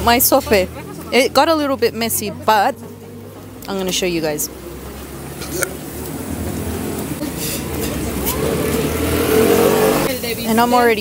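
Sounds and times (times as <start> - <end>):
passing vehicle engine: 0.0 - 11.0.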